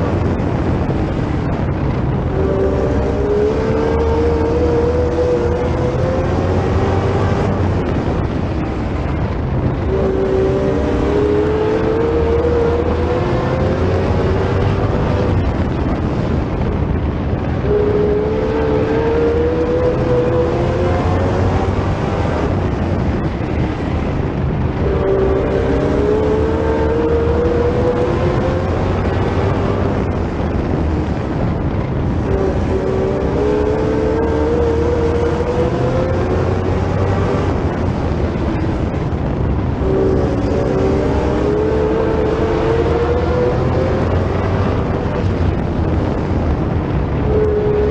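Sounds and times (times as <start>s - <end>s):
race car engine revving: 0.0s - 47.9s.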